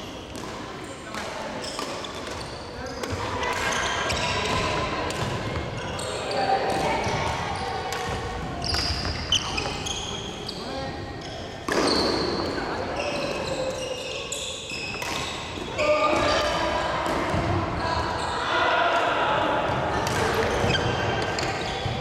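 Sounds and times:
voices in background: 0.4s - 22.0s
racket hitting shuttlecock: 3.0s - 5.7s, 11.6s - 12.4s, 14.9s - 15.4s
shoes squeaking on wooden floor: 8.6s - 12.3s.

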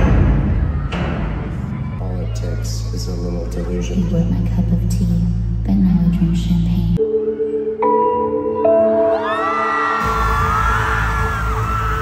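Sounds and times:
crowd screaming and cheering: 0.0s - 3.7s, 8.6s - 12.0s
deep bass drone: 1.6s - 7.0s.

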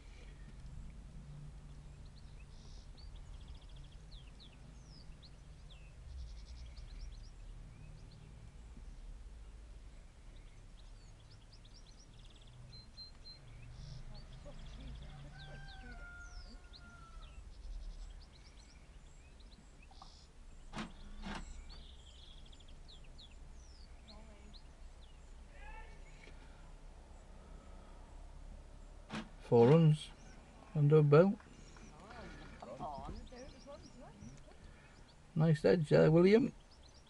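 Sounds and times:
low steady rumble: 0.0s - 37.0s
small birds chirping: 0.0s - 37.0s.

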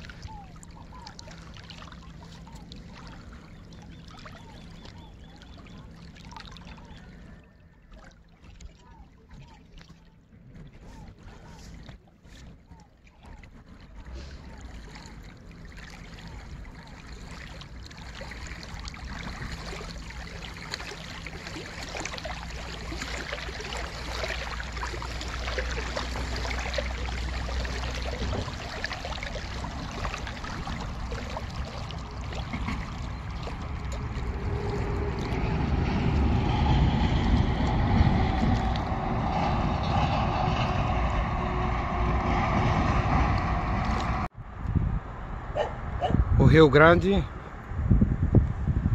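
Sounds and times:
heavy trucks rumbling: 30.6s - 44.3s.

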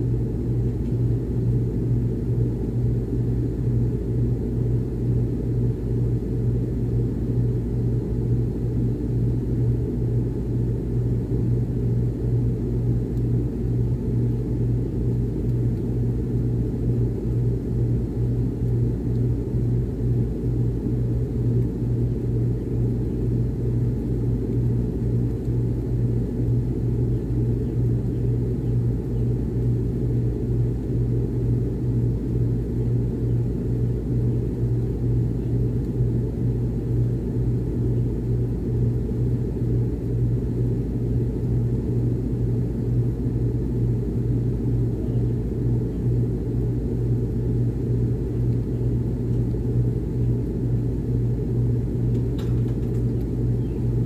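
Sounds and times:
air conditioner air rush: 0.0s - 54.0s
low hum: 0.0s - 54.0s.

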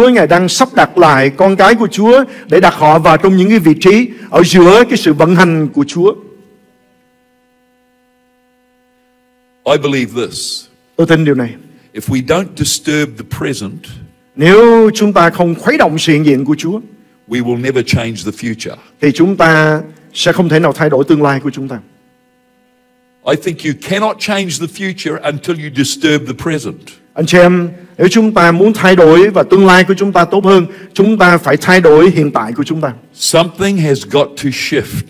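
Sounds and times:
man speaking: 0.0s - 6.4s, 9.6s - 21.9s, 23.2s - 35.0s
faint steady hum: 0.0s - 35.0s.

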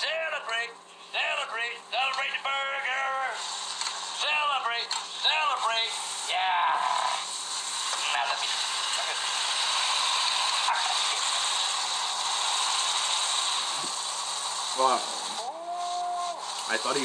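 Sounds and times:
rough hissing noise: 3.2s - 17.0s.

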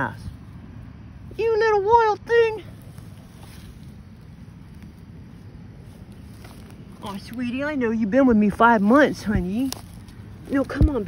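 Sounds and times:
low steady outdoor rumble: 0.0s - 11.0s.

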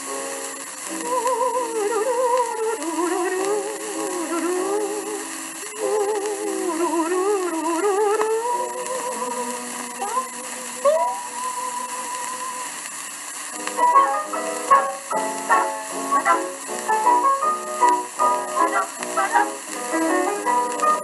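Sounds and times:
piano accompaniment: 0.0s - 12.7s, 13.5s - 21.0s
record surface hiss: 0.0s - 21.0s
voices singing in close harmony: 0.9s - 12.8s.

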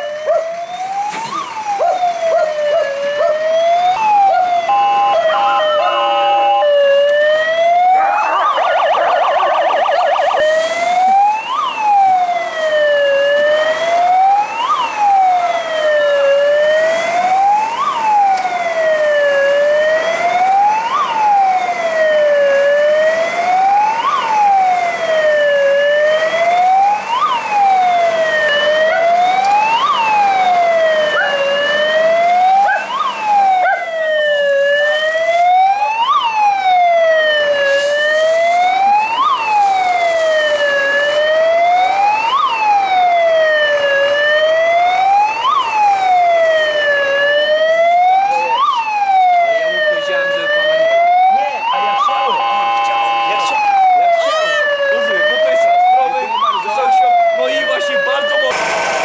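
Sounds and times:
fire engine siren wailing: 0.0s - 59.0s.

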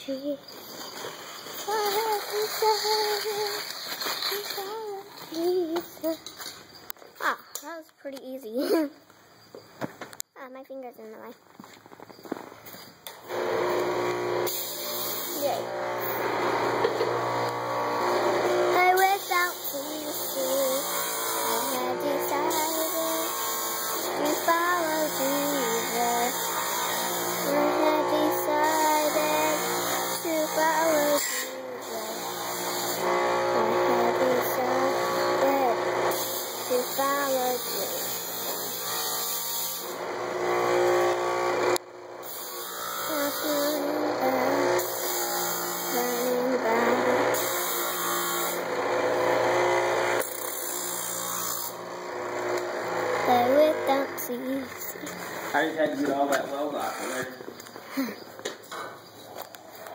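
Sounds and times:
child singing softly: 0.0s - 0.5s, 1.6s - 6.3s, 18.7s - 23.3s, 24.0s - 26.5s, 27.4s - 32.4s, 33.5s - 35.8s, 36.6s - 38.0s, 43.1s - 44.9s, 45.9s - 47.5s, 53.3s - 54.9s
power grinder on steel: 0.0s - 6.5s, 13.1s - 58.1s.

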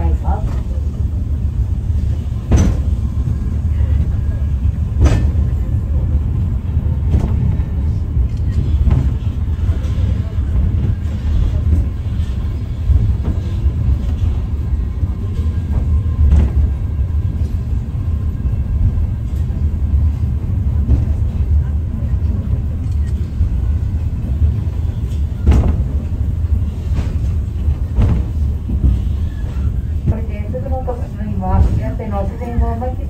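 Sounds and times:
funicular car rumbling on track: 0.0s - 33.0s.

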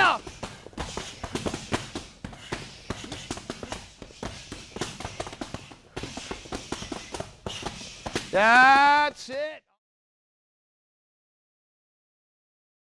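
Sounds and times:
punches on boxing mitts: 0.0s - 8.9s.

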